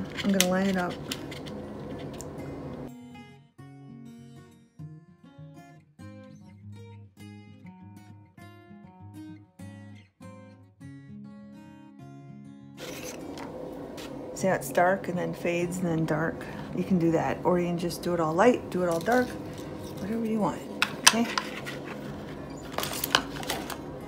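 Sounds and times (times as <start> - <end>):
plucked acoustic guitar music: 2.4 - 13.2.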